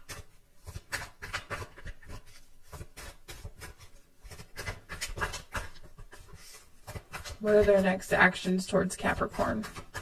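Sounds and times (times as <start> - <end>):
cards being shuffled by hand: 0.0 - 7.9.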